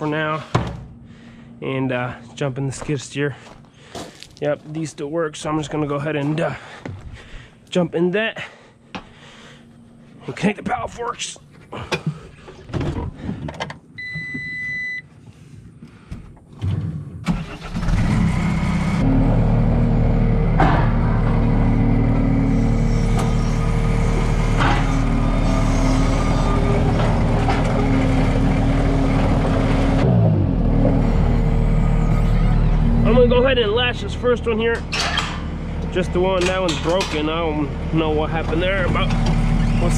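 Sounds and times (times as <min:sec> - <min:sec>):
diesel engine starting and running: 0:16.4 - 0:39.9
brief falling tone: 0:31.3 - 0:33.5.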